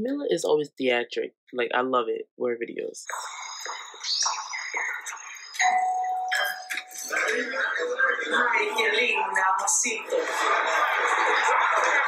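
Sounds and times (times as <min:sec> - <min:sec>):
voices: 0:02.7 - 0:12.0
steady high tones: 0:03.0 - 0:07.7.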